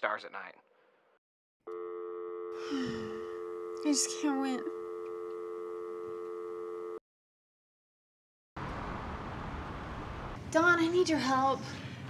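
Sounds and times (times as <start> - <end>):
telephone dial tone: 1.7 - 7.0.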